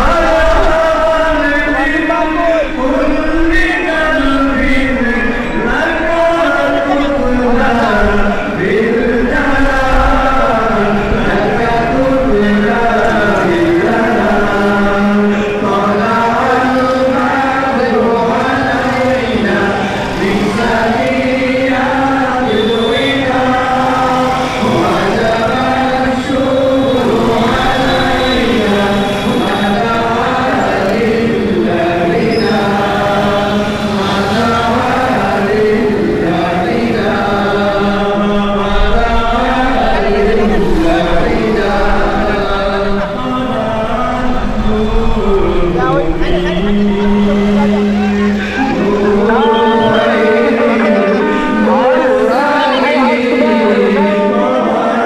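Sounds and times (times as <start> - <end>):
men chanting in unison: 0.0 - 55.0.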